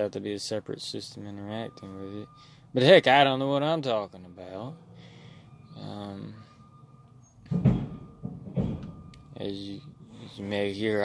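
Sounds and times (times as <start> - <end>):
heavy bangs: 7.4 - 9.3.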